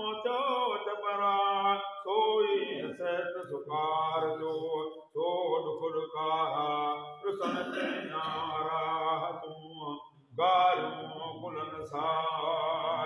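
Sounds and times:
men chanting: 0.0 - 13.0.

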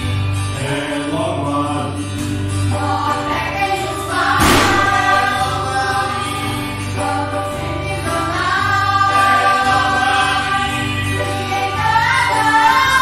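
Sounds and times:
choir singing a hymn: 2.7 - 13.0
steady low notes: 4.4 - 5.6.

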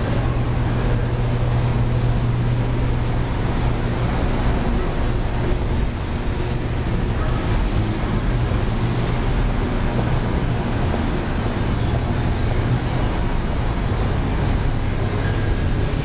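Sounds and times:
constant low hum: 0.0 - 16.0
road traffic: 0.0 - 16.0.

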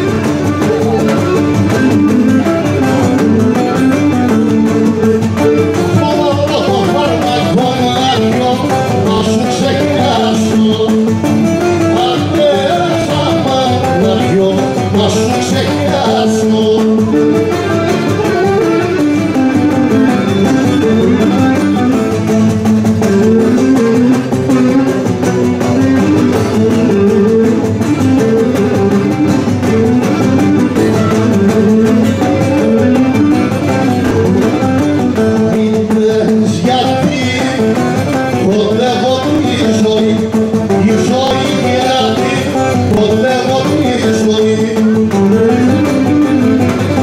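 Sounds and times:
plucked string folk dance music: 0.0 - 47.0.

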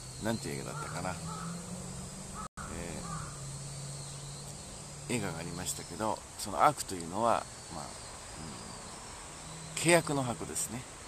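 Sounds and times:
crows cawing: 0.6 - 3.6.

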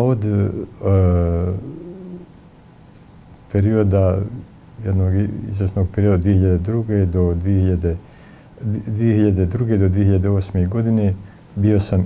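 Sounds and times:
man's drawn-out hesitation vowel: 0.0 - 2.3.

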